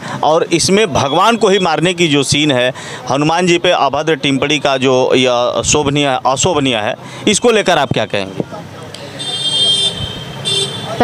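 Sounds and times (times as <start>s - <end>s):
vehicle horn: 9.1s - 11.0s.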